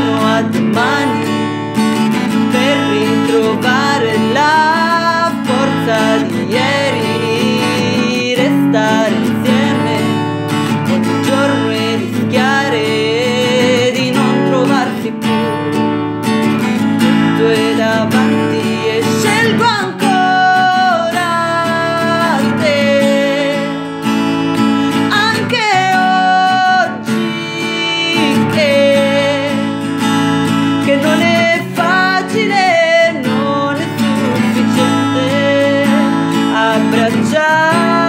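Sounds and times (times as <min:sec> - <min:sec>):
woman singing long notes: 0:00.0 - 0:01.5, 0:02.4 - 0:15.7, 0:17.1 - 0:24.0, 0:25.0 - 0:29.8, 0:30.8 - 0:38.0
acoustic guitar strummed: 0:00.0 - 0:38.0.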